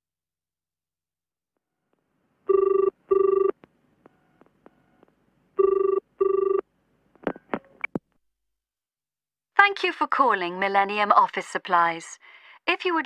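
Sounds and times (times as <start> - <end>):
telephone ringing tone: 2.5 - 5.0, 5.6 - 6.7.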